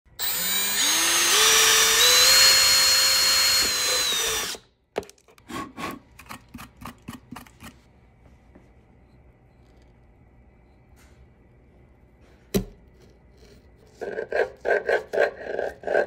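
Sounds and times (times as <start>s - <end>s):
cordless drill whining: 0.2s - 4.6s.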